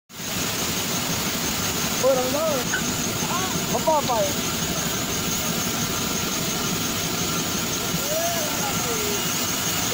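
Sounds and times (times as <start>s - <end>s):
band saw running: 0.2s - 9.9s.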